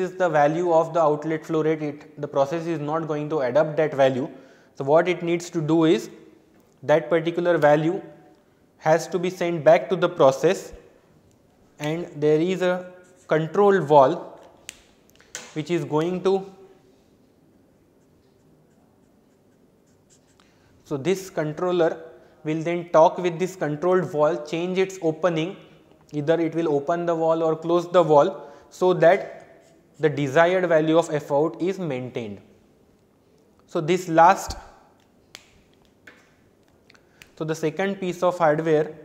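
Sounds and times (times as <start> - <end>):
marker drawing on paper: 12.9 - 13.6, 17.8 - 20.6, 29.4 - 30.3
sharp click: 14.4 - 15.6.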